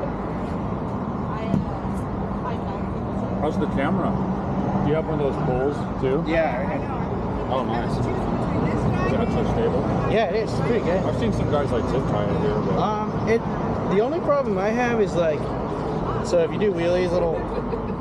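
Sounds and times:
men talking muffled: 0:03.4 - 0:17.8.

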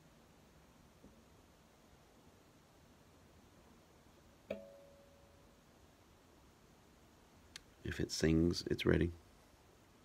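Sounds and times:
hook ringing tone: 0:04.5 - 0:05.3.

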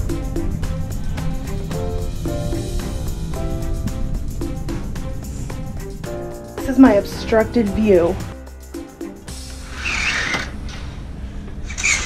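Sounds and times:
curtain swishing along track: 0:09.6 - 0:12.0
curtain runners squeaking: 0:09.7 - 0:10.6.

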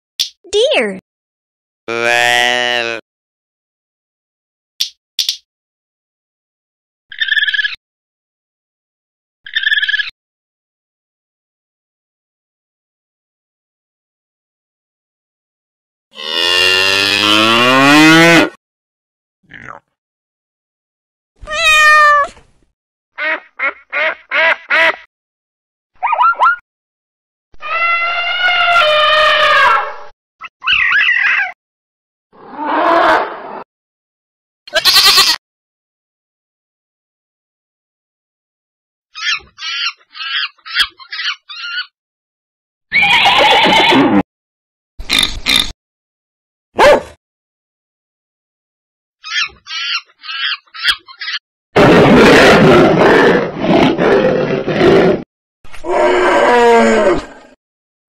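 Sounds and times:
loud animal roar: 0:16.2 - 0:18.6, 0:32.4 - 0:33.6, 0:51.8 - 0:57.6
animal yelping call: 0:26.0 - 0:26.6, 0:30.5 - 0:31.6, 0:39.2 - 0:41.9, 0:42.9 - 0:44.0, 0:49.2 - 0:51.4
animal call with falling tones: 0:27.6 - 0:31.6, 0:39.2 - 0:41.9, 0:49.2 - 0:51.4, 0:55.8 - 0:57.6
rough animal call: 0:49.3 - 0:57.6
animal long falling call: 0:55.8 - 0:57.6.

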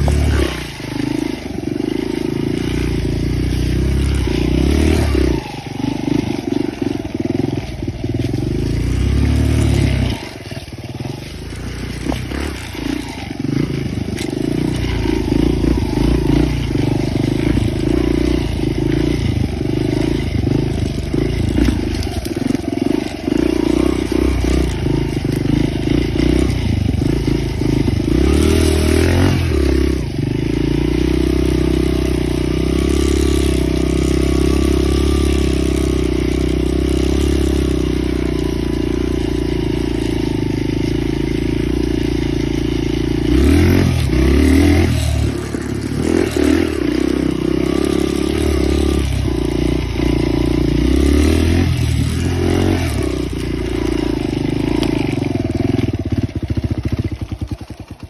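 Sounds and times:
dirt bike engine running: 0:00.0 - 0:58.0.

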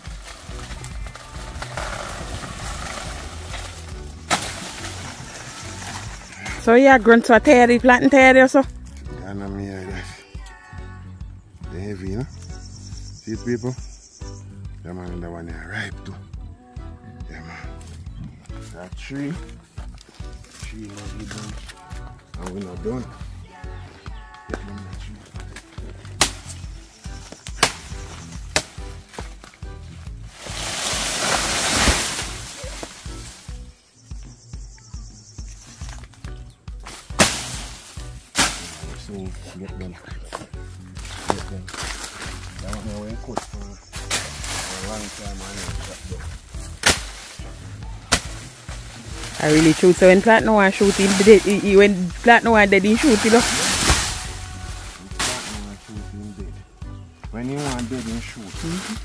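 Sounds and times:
plant crashing with rustling leaves: 0:00.0 - 0:06.4, 0:30.3 - 0:33.7, 0:36.9 - 0:39.0, 0:44.0 - 0:46.2, 0:46.8 - 0:55.9
background music with low beat: 0:00.0 - 0:59.0
machete chopping plant stalk: 0:00.1 - 0:06.2, 0:25.5 - 0:29.6, 0:30.4 - 0:33.4, 0:36.8 - 0:39.0, 0:46.6 - 0:47.4, 0:48.1 - 0:49.8, 0:53.0 - 0:54.4, 0:55.2 - 0:55.7.

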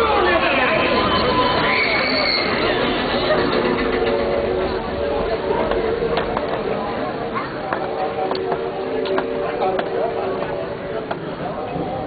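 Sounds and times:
riders talking and chattering: 0:00.0 - 0:12.0
roller coaster train rolling: 0:00.0 - 0:12.0
steady held tones: 0:00.0 - 0:12.0.

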